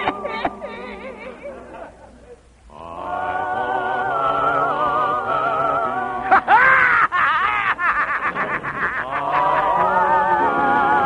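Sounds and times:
laugh-like snicker sound: 6.3s - 9.8s.

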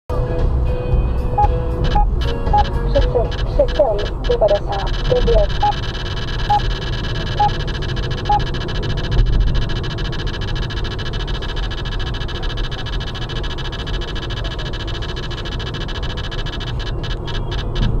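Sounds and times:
short beeps: 1.4s - 18.0s
faint high hum: 1.8s - 18.0s.

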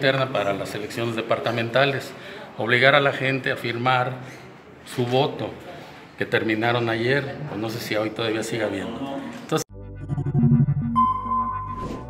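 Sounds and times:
electronic logo jingle: 9.7s - 12.0s
quick swish: 11.7s - 12.0s.

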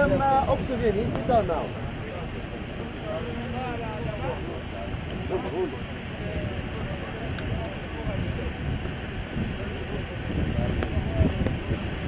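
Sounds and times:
distant people talking: 0.0s - 12.0s
steady low rumble: 0.0s - 12.0s.

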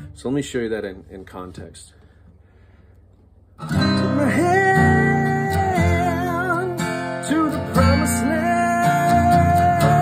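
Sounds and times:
acoustic guitar strummed: 3.6s - 10.0s.

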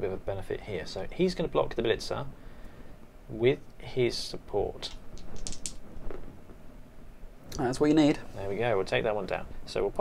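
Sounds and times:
plastic dice clicking on a mat: 4.8s - 5.8s.

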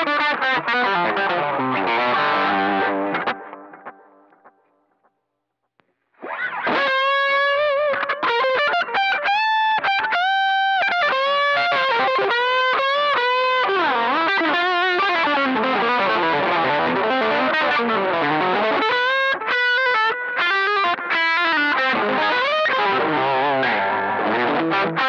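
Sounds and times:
overdriven electric guitar lead: 0.0s - 5.0s, 6.2s - 25.0s.

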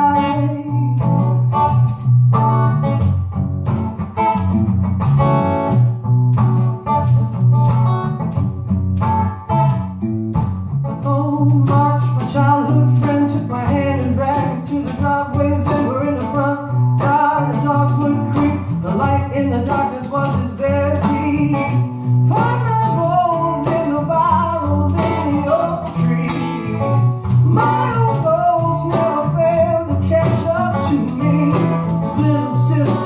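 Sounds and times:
man singing: 0.0s - 1.9s, 11.0s - 33.0s
acoustic guitar: 0.0s - 33.0s
bass guitar low notes: 0.0s - 33.0s.

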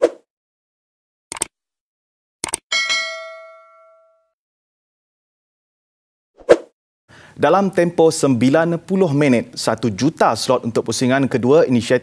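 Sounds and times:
bright bell ding: 2.7s - 4.4s.

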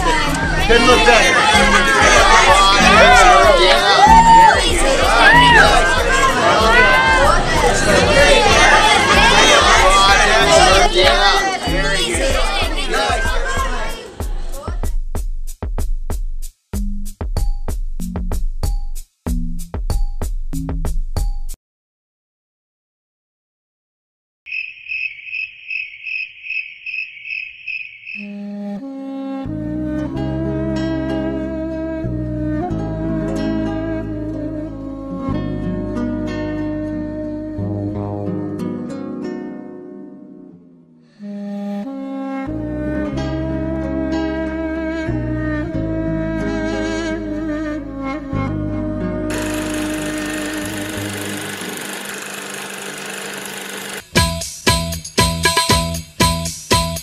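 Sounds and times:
cricket chirping: 24.5s - 28.4s
soft music: 28.7s - 41.0s
film projector whirring: 49.3s - 54.2s.

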